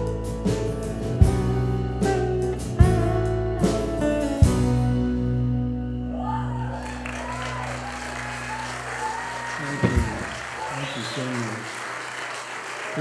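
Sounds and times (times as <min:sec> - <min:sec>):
audience applauding: 0:06.4 - 0:13.0.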